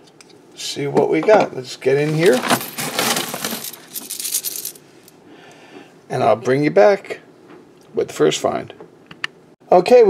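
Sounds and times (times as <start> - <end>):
coins clinking and jingling: 2.3 - 4.8.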